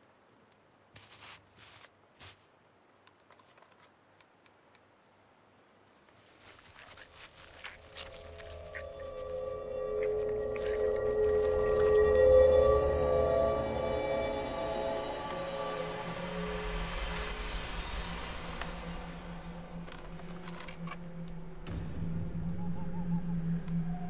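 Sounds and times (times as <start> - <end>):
eerie horror score tones: 7.9 - 24.0
rising hiss-like wash: 8.9 - 21.6.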